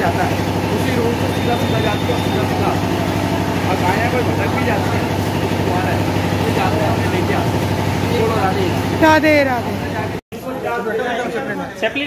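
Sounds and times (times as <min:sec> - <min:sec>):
low machine hum: 0:00.0 - 0:10.2.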